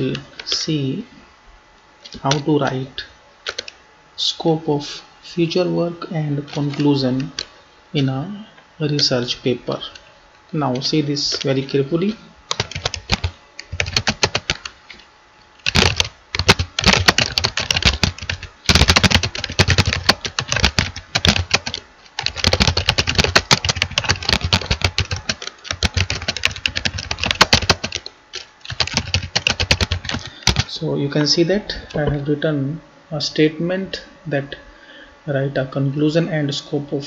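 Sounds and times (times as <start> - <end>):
computer keyboard typing: 3.4 - 3.8, 6.5 - 7.5, 10.7 - 14.8, 15.6 - 30.7.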